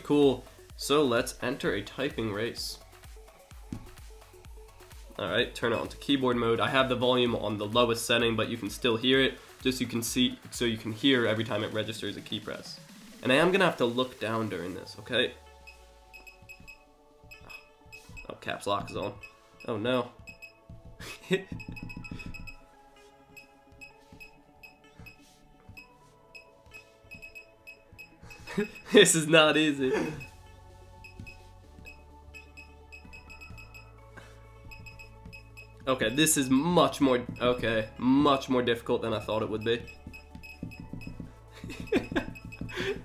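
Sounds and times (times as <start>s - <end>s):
background music: 0.0s - 43.0s.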